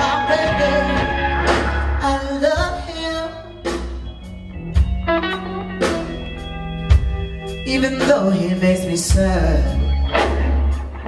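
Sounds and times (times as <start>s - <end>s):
blues band playing: 0.0s - 11.0s.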